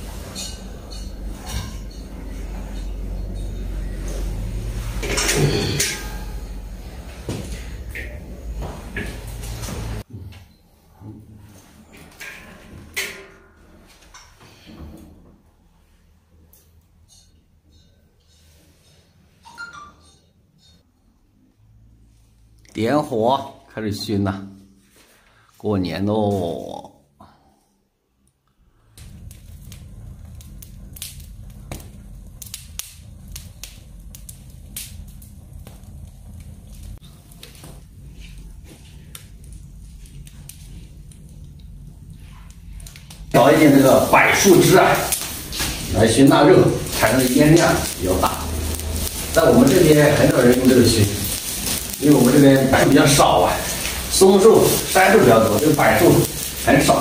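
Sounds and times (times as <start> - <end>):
low rumble: 29.0 - 43.4
log fire crackling and popping: 29.0 - 57.0.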